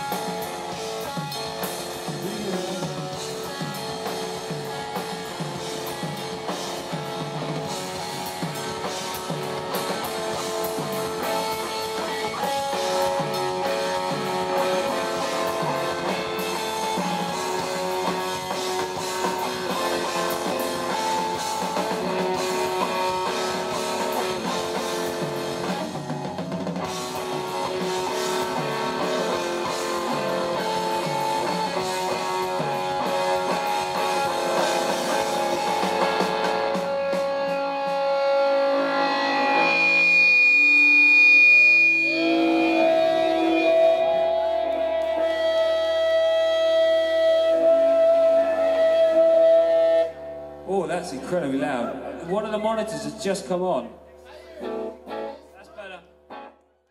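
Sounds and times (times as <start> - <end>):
drum kit: 0.0 - 56.5
electric guitars: 0.0 - 56.7.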